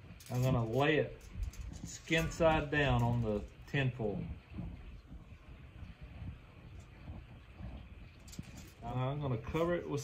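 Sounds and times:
aluminium foil rustling: 0.0s - 4.0s, 8.0s - 10.0s.

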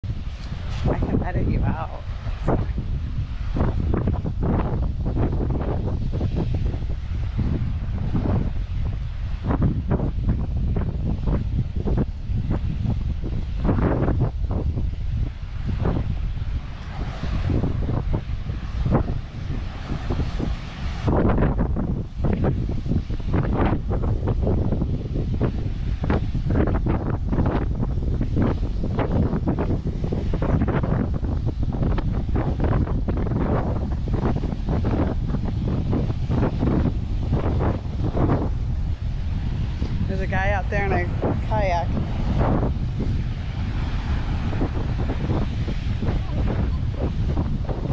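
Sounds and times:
ocean surf: 0.0s - 47.9s
wind buffeting microphone: 0.0s - 47.9s.

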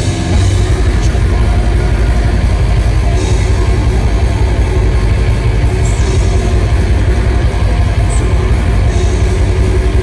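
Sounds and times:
distorted electric guitar: 0.0s - 10.0s
metal band playing live: 0.0s - 10.0s
rapid drums: 0.0s - 10.0s.

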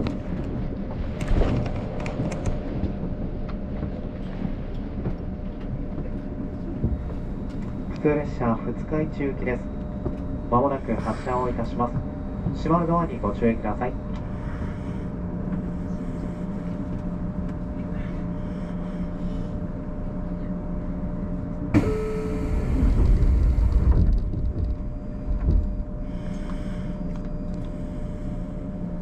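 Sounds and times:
electric train humming: 0.0s - 29.0s
loud rush with deep rumble: 22.7s - 26.7s.

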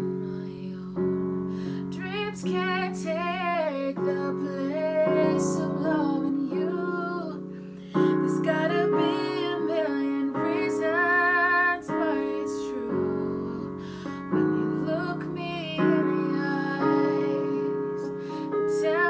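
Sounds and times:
electric keyboard piano chords: 0.0s - 19.0s
woman singing: 0.0s - 19.0s.

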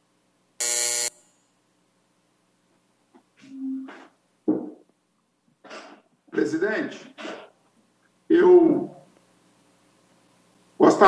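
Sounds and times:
loud electric buzzer: 0.6s - 1.3s.

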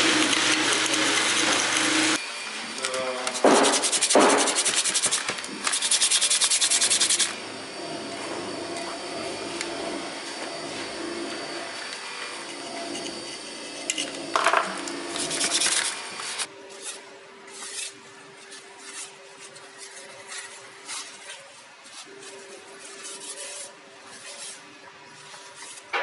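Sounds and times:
wire brush scrubbing metal: 0.0s - 2.2s, 3.2s - 7.4s, 15.1s - 26.0s
soft rubbing: 16.7s - 25.9s.

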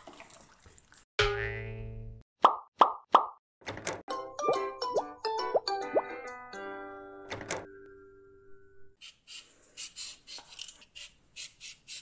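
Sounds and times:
playful plucked tune: 4.1s - 6.4s.

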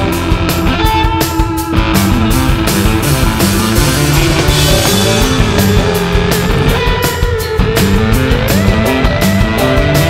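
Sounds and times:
electric guitar: 0.0s - 10.0s
keyboard: 0.0s - 10.0s
rock band playing live: 0.0s - 10.0s.

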